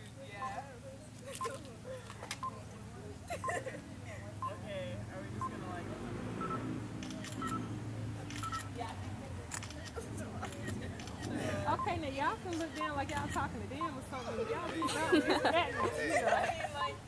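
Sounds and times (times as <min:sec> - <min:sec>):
short electronic beeps: 0:06.4 - 0:06.7, 0:07.3 - 0:07.7, 0:08.4 - 0:08.7.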